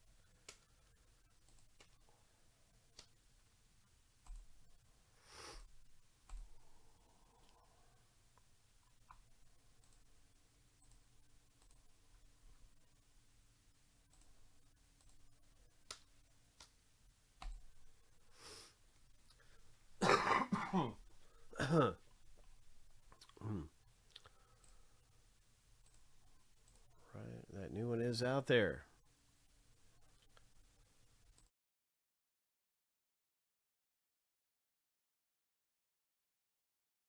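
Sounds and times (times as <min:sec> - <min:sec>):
faint sharp clicks: 0:15.9 - 0:16.8
person clearing throat: 0:20.0 - 0:21.0, 0:21.6 - 0:22.0, 0:23.4 - 0:23.7.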